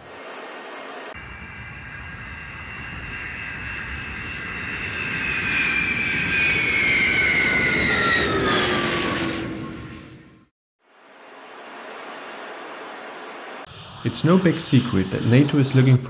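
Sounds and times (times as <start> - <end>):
jet engine whine: 0.0 - 10.5, 11.1 - 16.0.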